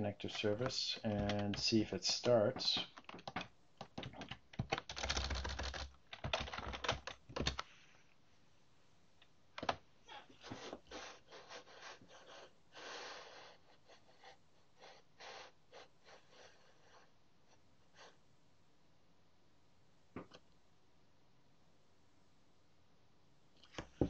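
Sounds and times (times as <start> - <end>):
typing on computer keyboard: 1.1 - 1.6, 2.8 - 7.6.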